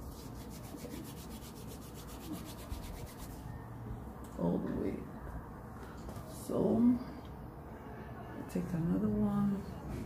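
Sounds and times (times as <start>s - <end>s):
fast rubbing of hair: 0.0s - 3.4s.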